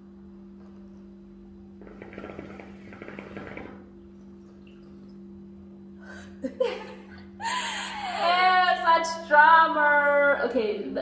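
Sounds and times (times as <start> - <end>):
hookah water bubbling: 1.7 - 5.8.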